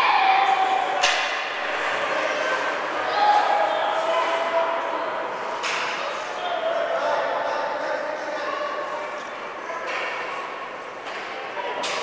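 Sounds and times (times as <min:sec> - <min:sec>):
voices calling out echoing: 0:00.0 - 0:12.0.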